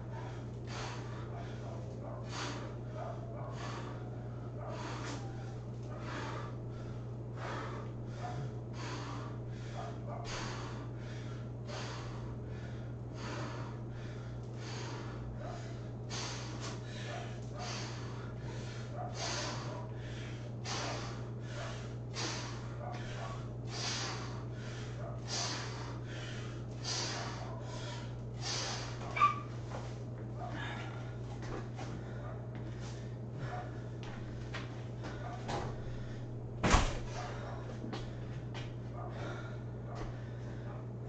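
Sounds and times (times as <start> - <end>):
man breathing hard: 0.0 - 41.0.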